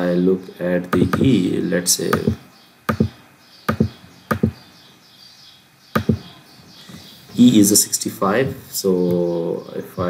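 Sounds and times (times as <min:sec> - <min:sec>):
computer keyboard key taps: 0:01.0 - 0:01.3, 0:02.1 - 0:04.6, 0:06.0 - 0:06.2.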